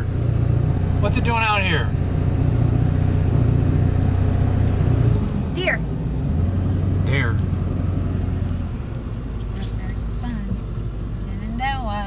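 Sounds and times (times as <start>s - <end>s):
engine and road rumble in cab: 0.0s - 12.0s.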